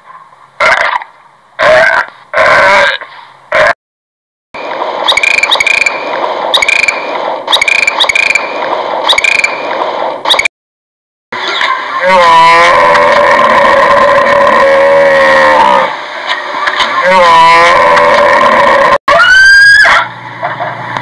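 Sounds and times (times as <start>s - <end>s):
dolphin chirping and clicking: 5.1s - 6.0s, 6.6s - 10.5s
hippopotamus call: 11.5s - 16.0s.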